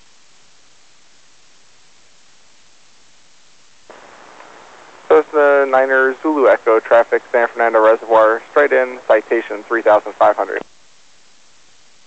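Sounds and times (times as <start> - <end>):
radio receiver hiss: 3.8 - 10.8.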